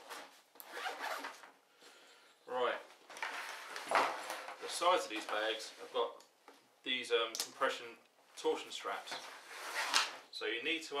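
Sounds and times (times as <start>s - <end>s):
backpack zip being drawn: 0.6s - 1.4s.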